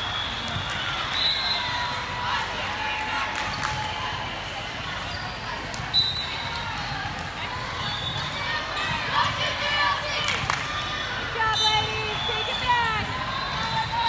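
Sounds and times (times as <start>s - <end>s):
players' voices: 0.4s - 14.0s.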